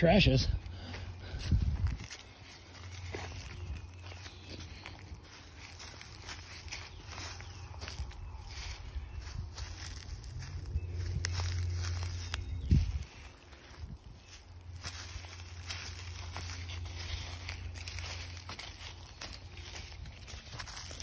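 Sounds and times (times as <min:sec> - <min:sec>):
footsteps crunching through dry leaves: 0:00.4 - 0:21.0
low rumble: 0:07.6 - 0:20.2.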